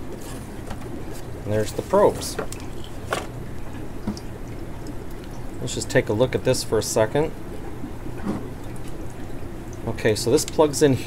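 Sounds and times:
steady low hum: 0.0 - 11.0
faint trickling water: 0.9 - 11.0.

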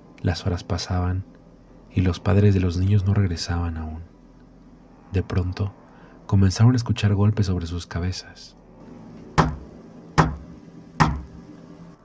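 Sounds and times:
heavy blows on a car roof: 9.4 - 11.3.

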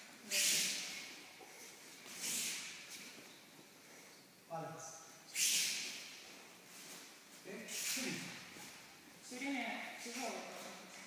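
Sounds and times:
sharp hissing swishes: 0.2 - 1.2, 1.9 - 3.1, 5.3 - 6.2, 7.7 - 8.5.

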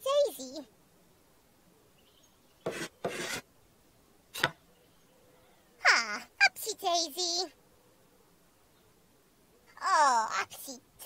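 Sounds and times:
rasping rubbing noises: 2.6 - 3.5.

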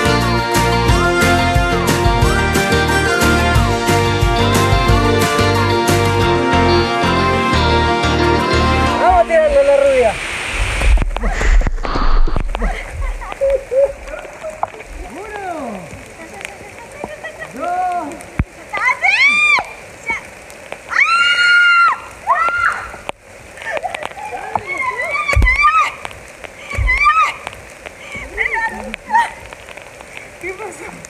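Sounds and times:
background music: 0.0 - 9.6
person whooping and shrieking: 20.9 - 23.0, 24.3 - 29.4.

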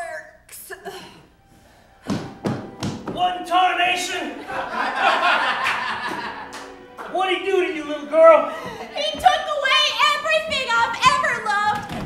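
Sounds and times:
heavy thumps: 2.0 - 3.4, 8.6 - 12.0
person speaking: 3.0 - 4.7, 7.0 - 11.9.

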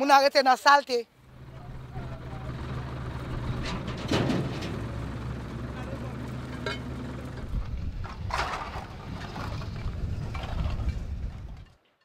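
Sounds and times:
low engine drone: 1.2 - 11.6
faint distant voices: 1.4 - 3.2.

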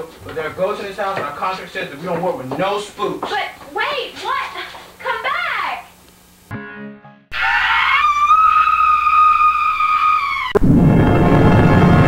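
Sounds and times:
woman screaming: 7.3 - 10.6.

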